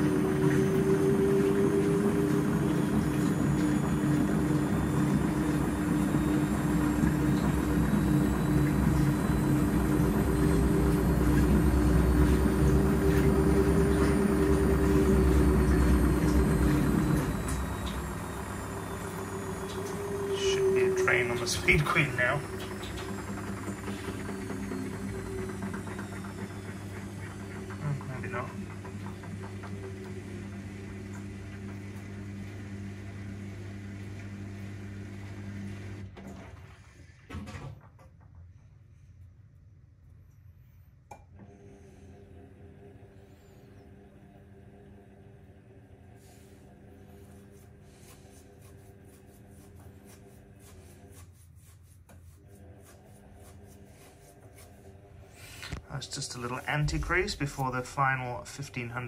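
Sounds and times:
motor hum with regular ticks: 0.0 - 36.0, 38.2 - 59.0
washing machine motor whine: 0.0 - 59.0.

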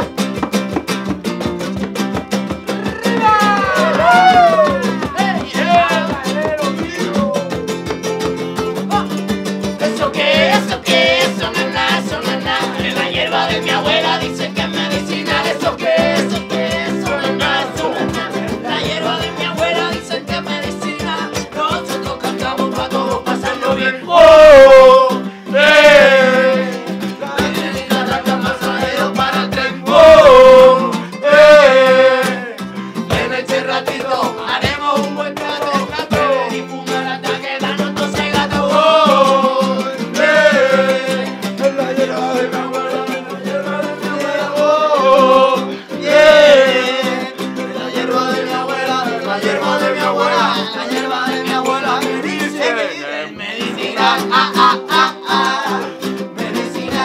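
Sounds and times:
hand drums: 0.0 - 52.4, 53.6 - 57.0
strummed acoustic guitar: 0.0 - 57.0
ukulele: 0.0 - 57.0
group singing: 2.7 - 7.7, 9.6 - 57.0.

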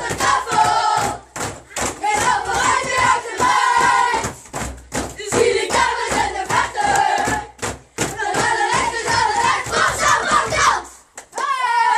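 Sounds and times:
children shouting and chanting: 0.0 - 4.4, 5.2 - 11.9.

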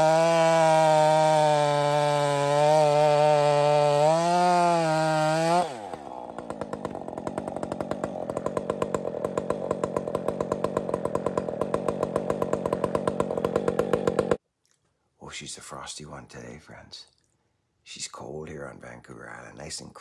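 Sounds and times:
chainsaw revving then idling: 0.0 - 14.4.

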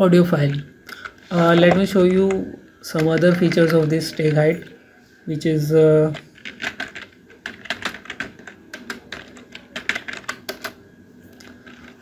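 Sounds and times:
computer keyboard keys clicking: 1.8 - 4.4, 6.1 - 10.8.

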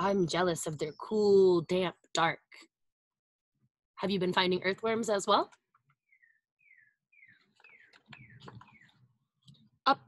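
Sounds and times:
bird singing whistled notes: 6.1 - 9.0.

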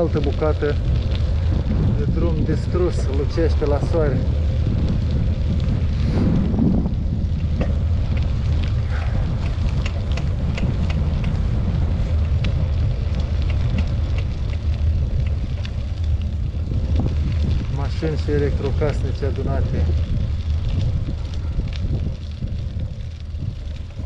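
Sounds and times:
bicycle clicks and rattles: 0.0 - 24.0
wind rumble on microphone: 0.0 - 24.0.

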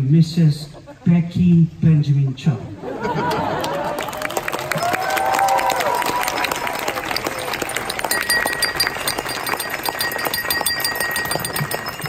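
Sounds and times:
crowd applauding: 3.1 - 12.0
thin high tone: 4.7 - 12.0.

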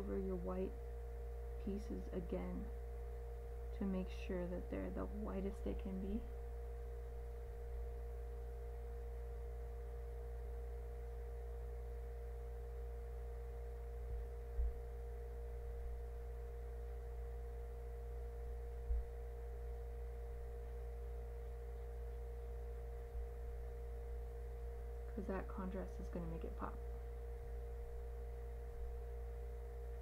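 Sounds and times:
steady electrical hum: 0.0 - 30.0
soft low thumps: 2.3 - 30.0.

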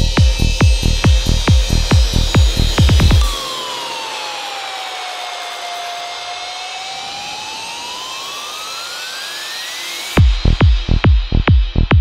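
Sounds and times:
hissing synth noise sweep: 0.0 - 12.0
synth tone rising in pitch: 0.0 - 12.0.

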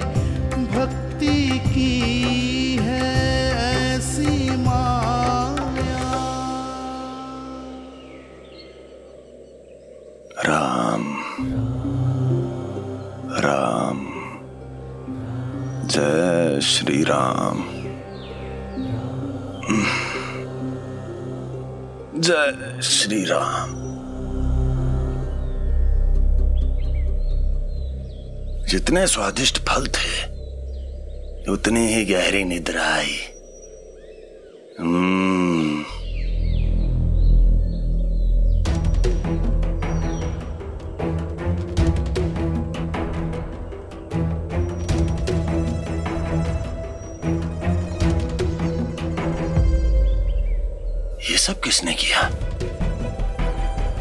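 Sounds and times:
devotional song: 0.0 - 54.0
faint birdsong chirps: 0.0 - 54.0
dramatic music drone: 4.4 - 54.0.

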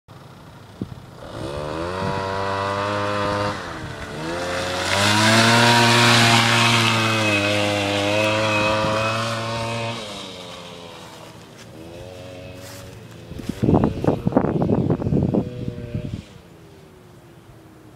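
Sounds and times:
quad bike engine revving: 0.8 - 16.5.

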